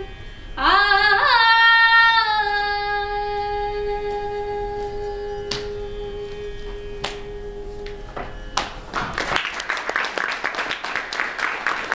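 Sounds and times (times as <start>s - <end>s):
audience applause: 8.6s - 12.0s.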